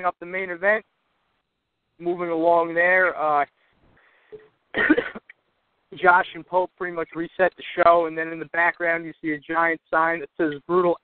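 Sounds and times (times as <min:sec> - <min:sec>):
man coughing: 0:04.7 - 0:05.3.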